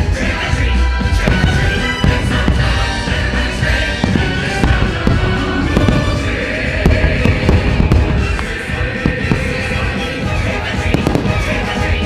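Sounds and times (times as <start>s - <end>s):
fireworks bursting with bangs: 0.0s - 12.0s
loud show soundtrack music: 0.0s - 12.0s.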